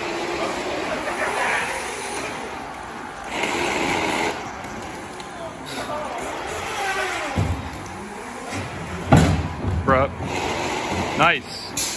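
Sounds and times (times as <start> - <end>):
robot electric motors and wheels: 0.0 - 5.3, 6.2 - 9.5, 10.2 - 11.9.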